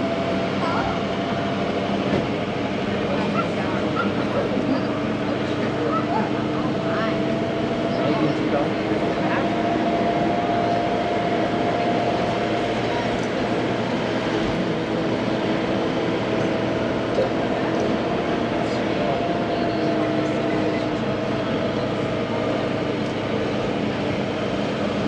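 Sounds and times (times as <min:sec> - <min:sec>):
tram vehicle drone: 0:00.0 - 0:25.0.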